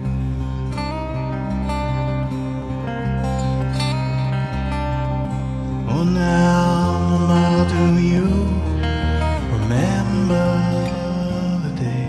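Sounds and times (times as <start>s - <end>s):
acoustic guitar playing: 0.0s - 12.0s
wordless male vocal: 5.6s - 12.0s.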